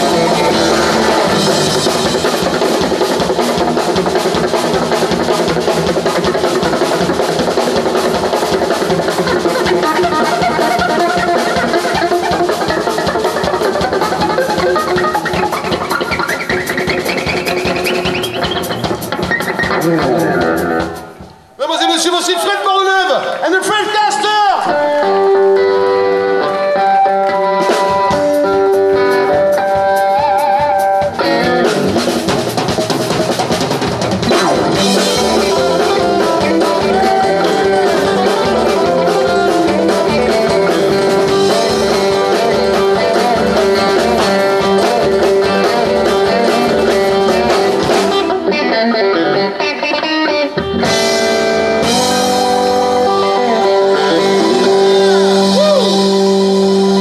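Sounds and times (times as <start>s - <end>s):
bass guitar: 0.0s - 21.6s, 24.6s - 57.0s
electric guitar lead: 0.0s - 21.6s, 24.6s - 57.0s
drum kit: 0.0s - 57.0s.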